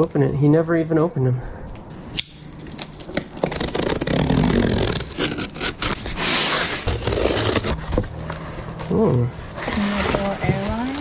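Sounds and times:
packing tape tearing: 2.2s - 7.8s
cardboard rustling: 2.8s - 11.0s.

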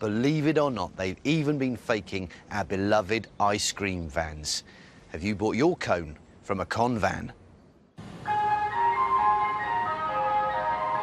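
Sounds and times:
low rumble of moving van: 7.2s - 11.0s
ice cream van chime: 8.2s - 11.0s.

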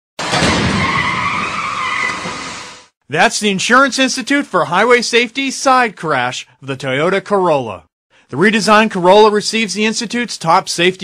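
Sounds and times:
car crash impact: 0.2s - 2.9s
high tyre squeal: 0.2s - 2.9s.

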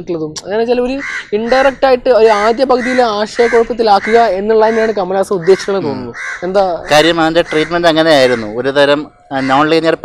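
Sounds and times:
man talking animatedly: 0.0s - 10.0s.

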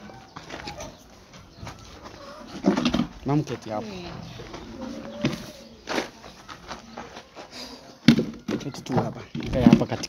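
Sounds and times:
outdoor background noise: 0.0s - 10.0s
faint animal calls: 3.8s - 6.0s.

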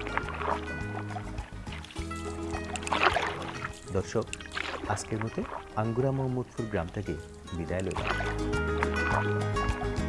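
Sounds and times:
music with sustained tones: 0.0s - 10.0s
oar splashing in water: 0.0s - 10.0s.

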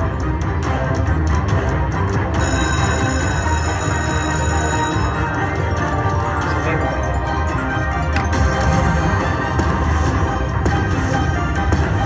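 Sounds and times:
slot machine bonus music: 0.0s - 12.0s
bell-like tones: 2.4s - 12.0s.

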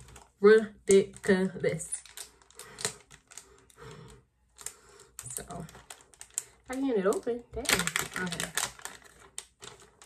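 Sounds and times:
package tearing and crackling: 1.8s - 10.0s.

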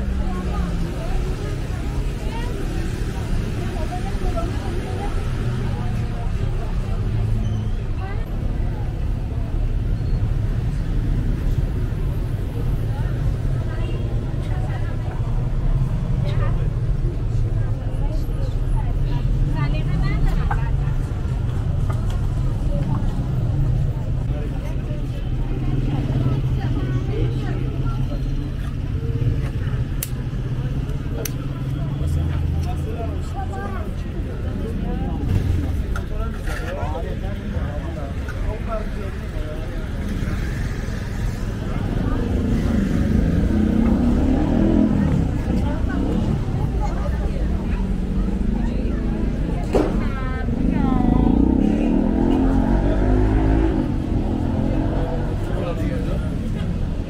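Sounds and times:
passers-by talking: 0.0s - 57.0s
traffic hum: 0.0s - 57.0s.

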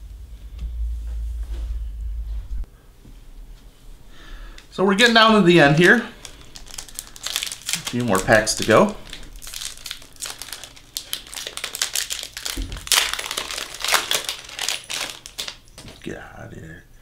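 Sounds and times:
foil wrapper crinkling: 5.0s - 16.0s.

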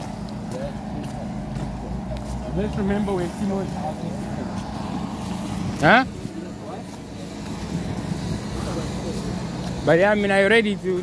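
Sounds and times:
street traffic passing cars: 0.0s - 11.0s.

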